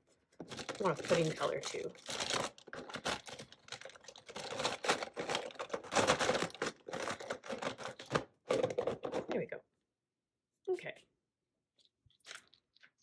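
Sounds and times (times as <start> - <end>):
plastic markers rattling in a box: 0.4 - 9.4.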